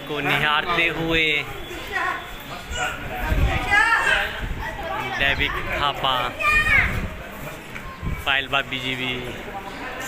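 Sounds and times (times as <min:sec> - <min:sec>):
wind rumbling on microphone: 0:03.1 - 0:08.3.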